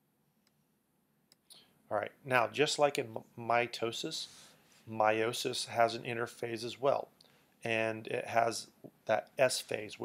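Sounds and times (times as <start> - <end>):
man speaking: 1.9 - 10.0.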